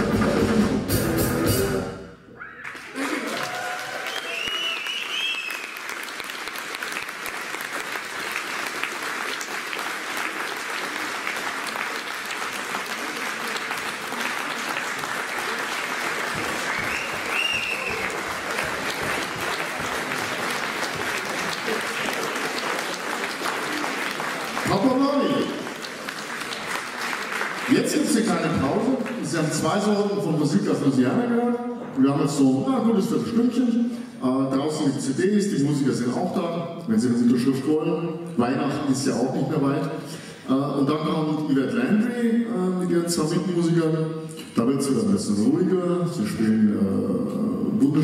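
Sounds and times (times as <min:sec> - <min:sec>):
audience applauding: 0:02.4 - 0:29.7
short high whistle: 0:04.0 - 0:05.8, 0:16.7 - 0:18.1
man speaking into a microphone: 0:24.6 - 0:25.7, 0:27.7 - 0:48.0.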